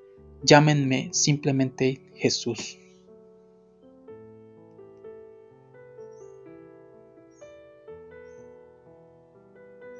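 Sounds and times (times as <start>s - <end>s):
soft piano music: 0.0s - 9.9s.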